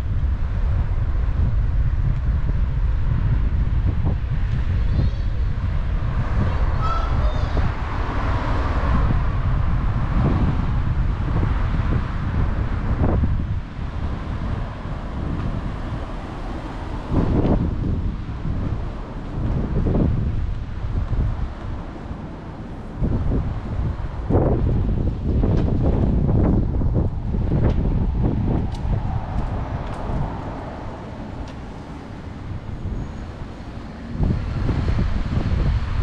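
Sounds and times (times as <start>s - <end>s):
cars passing on street: 0.0s - 36.0s
wind buffeting microphone: 0.0s - 36.0s.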